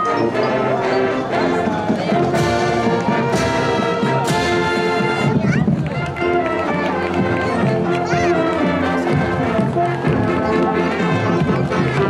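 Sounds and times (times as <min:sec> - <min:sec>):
marching brass band playing: 0:00.0 - 0:12.0.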